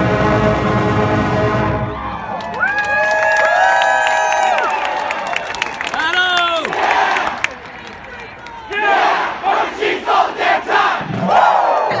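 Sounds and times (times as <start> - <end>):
crowd shouting rhythmic chant: 6.6 - 7.4, 8.6 - 12.0.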